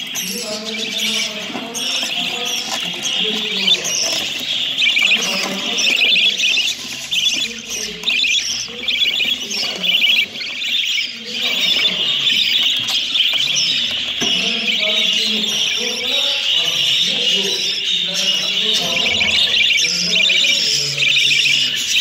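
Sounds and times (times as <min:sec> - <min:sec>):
budgerigars chattering and squawking: 0:00.0 - 0:22.0.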